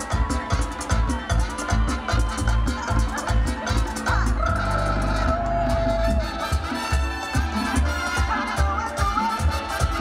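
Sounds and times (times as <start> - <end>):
live salsa band playing: 0.0 - 10.0.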